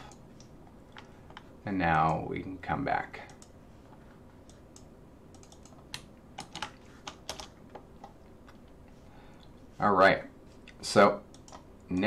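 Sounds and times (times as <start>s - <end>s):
computer keyboard typing: 4.4s - 8.2s.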